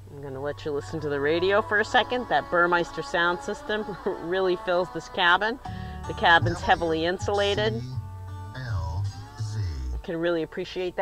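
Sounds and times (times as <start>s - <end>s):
music from car radio: 0.0s - 11.0s.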